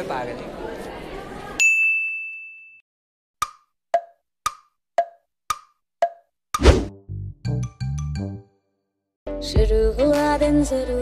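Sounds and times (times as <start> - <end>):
high ding: 1.6 - 2.8
percussion beat: 3.4 - 6.3
wood-block knocks: 3.4 - 6.3.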